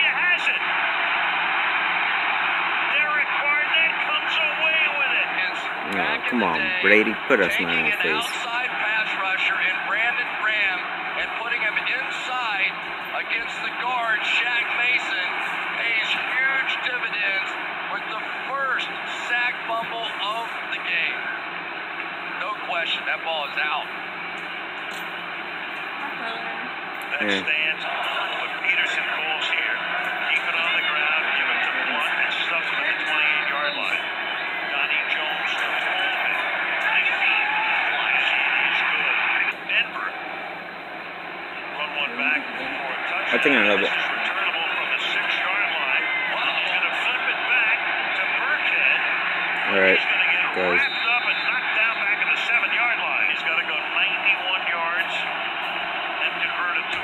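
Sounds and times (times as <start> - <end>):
stadium crowd noise: 0.0 - 57.0
commentators talking: 3.0 - 21.2, 26.0 - 34.0, 41.7 - 55.3.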